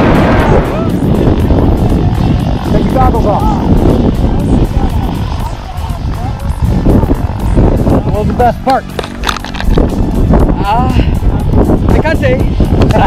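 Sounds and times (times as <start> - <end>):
background music: 0.0 - 13.0
wind buffeting microphone: 0.0 - 13.0.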